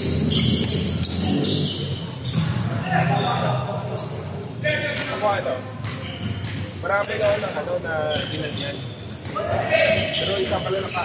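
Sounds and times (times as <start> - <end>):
basketball bouncing on court floor: 4.8 - 10.6.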